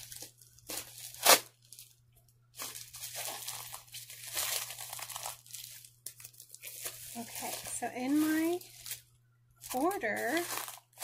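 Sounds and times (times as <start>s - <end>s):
packaging crinkling and tearing: 0.0s - 11.0s.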